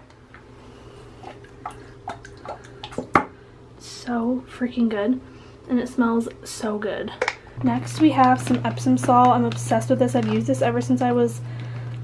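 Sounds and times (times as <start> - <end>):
soap dripping into bathwater: 1.4 - 3.4.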